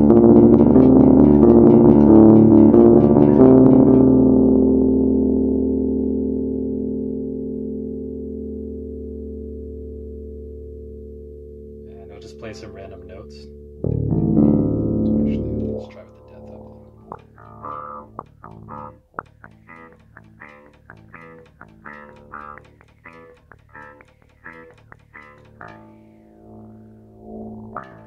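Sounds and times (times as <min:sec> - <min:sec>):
bass guitar with envelope filter: 0:00.0 - 0:11.9, 0:13.4 - 0:28.0.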